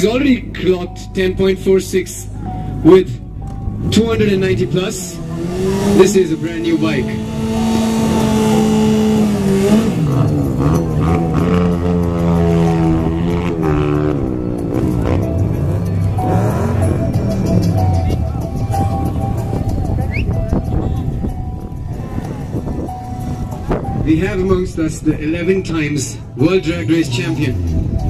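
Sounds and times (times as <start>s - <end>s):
motorcycle engine revving: 3.5s - 21.3s.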